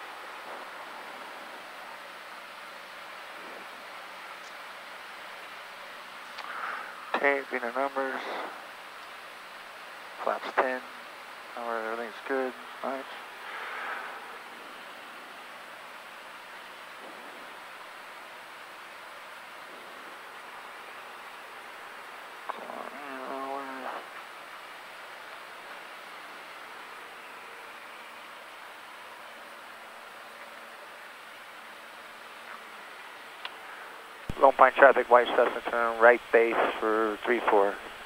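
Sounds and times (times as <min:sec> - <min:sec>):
muffled airplane engine and airflow: 0:00.0 - 0:31.6, 0:32.3 - 0:38.0.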